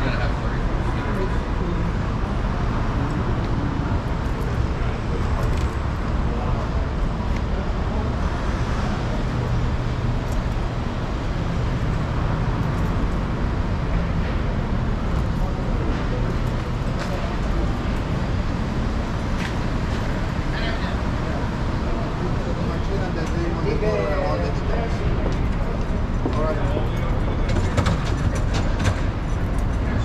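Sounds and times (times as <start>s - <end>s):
traffic rumble: 0.0s - 30.0s.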